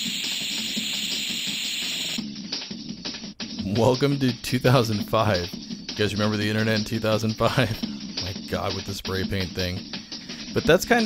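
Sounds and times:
spray paint hiss: 0.0s - 2.2s
music track: 0.0s - 11.0s.

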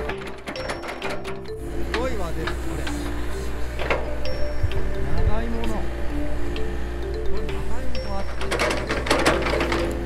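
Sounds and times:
rapid clatter of clicks and knocks: 0.0s - 2.6s, 8.3s - 10.0s
diesel engine humming: 0.0s - 10.0s.

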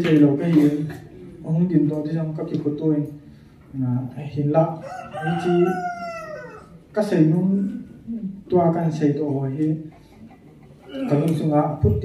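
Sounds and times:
rooster crowing: 4.8s - 6.8s
man talking: 10.9s - 12.0s.

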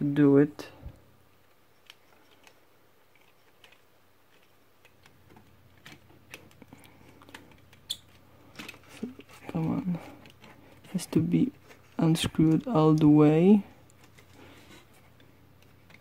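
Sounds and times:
screwdriver turning screw in plastic: 1.4s - 6.6s
plastic parts clicking: 1.4s - 9.4s.

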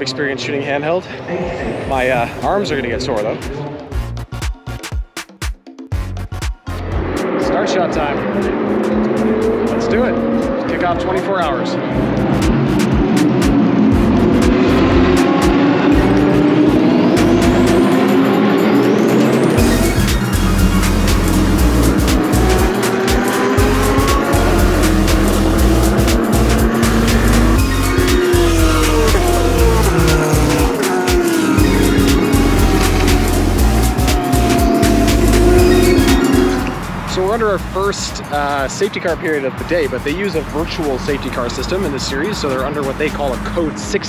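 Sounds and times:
background music with steady beat: 1.9s - 44.0s
racing car engines revving: 6.8s - 44.0s.

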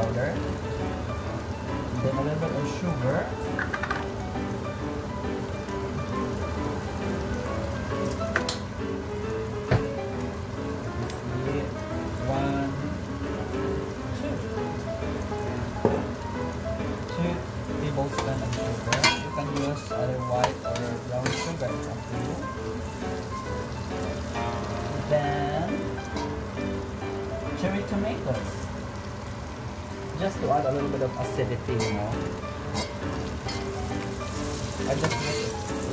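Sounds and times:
vegetables sizzling in hot oil: 0.0s - 35.9s
metal spoon clinking on pot: 18.9s - 19.8s.

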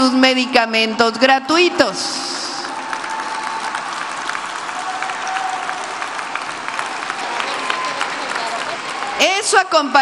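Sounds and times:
audience applauding: 2.3s - 9.6s.

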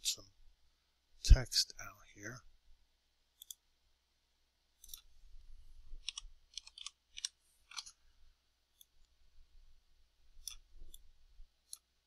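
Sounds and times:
computer mouse clicks: 3.4s - 3.6s, 4.8s - 5.1s, 6.0s - 8.0s, 10.4s - 11.9s
keyboard keys clicking: 6.0s - 7.9s.

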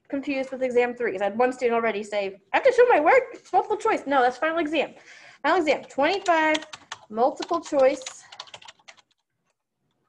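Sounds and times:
computer keyboard typing: 5.6s - 9.6s.

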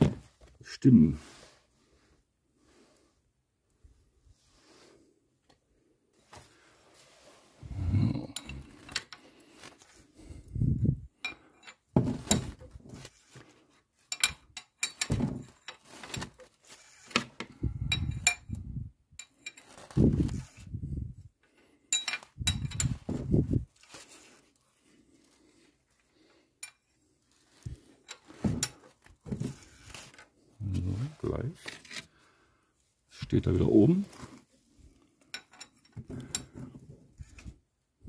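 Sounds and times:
spanner clinking on metal: 8.3s - 9.2s, 14.1s - 15.8s, 17.8s - 18.6s, 21.9s - 23.1s.

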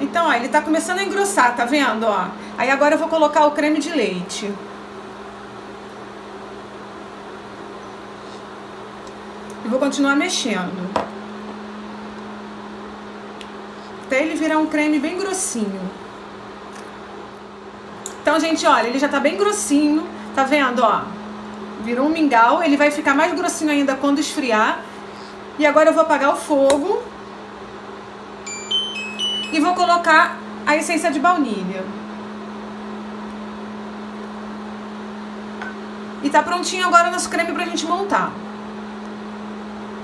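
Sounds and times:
electric cooktop hum and fan: 0.0s - 40.0s.

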